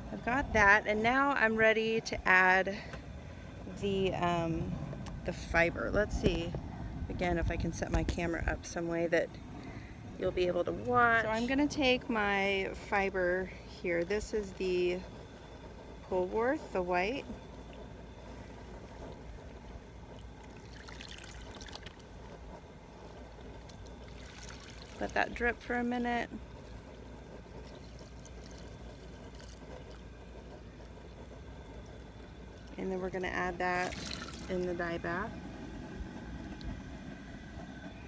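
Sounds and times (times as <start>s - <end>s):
gas burner rumbling: 0.0s - 38.0s
water streaming and dripping: 20.1s - 22.0s, 23.6s - 25.4s, 33.8s - 34.6s
wet wool gathered in water: 20.4s - 22.2s, 23.6s - 30.1s, 31.7s - 35.0s.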